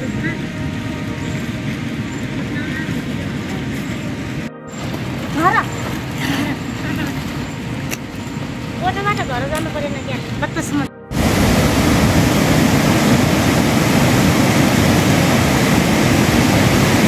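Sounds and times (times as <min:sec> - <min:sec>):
steady rain: 0:00.0 - 0:17.0.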